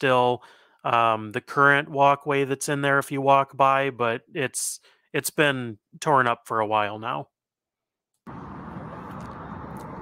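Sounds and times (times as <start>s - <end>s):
distant traffic rumble: 8.3s - 10.0s.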